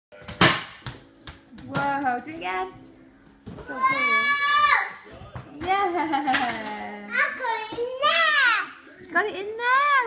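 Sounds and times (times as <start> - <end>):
ball bouncing on wooden floor: 0.2 - 3.8, 5.0 - 6.7.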